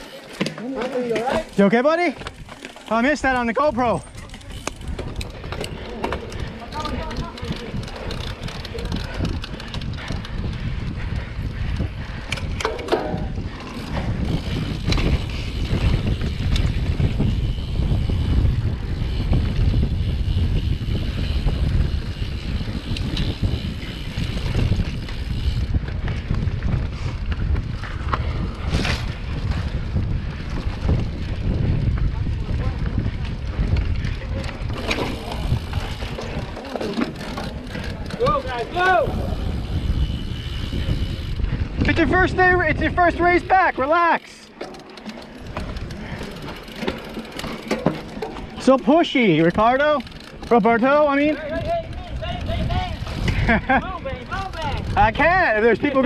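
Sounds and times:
bike rattling and knocking: 0:00.0 - 0:56.0
bike tyres rumbling on dirt: 0:00.0 - 0:56.0
wind buffeting microphone: 0:01.2 - 0:56.0.

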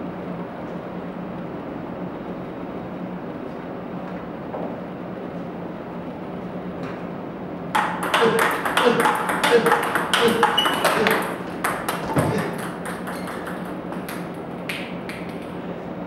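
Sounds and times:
table tennis ball clicks: 0:07.8 - 0:15.6.

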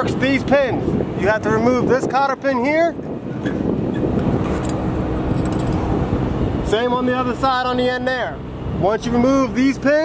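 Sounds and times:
engine running rumble: 0:00.0 - 0:10.0.

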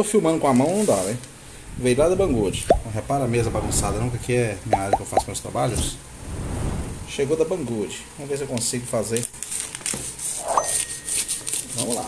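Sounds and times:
short rising hum: 0:05.8 - 0:07.3
plastic rustling and crinkling: 0:09.1 - 0:10.4, 0:11.1 - 0:12.0.

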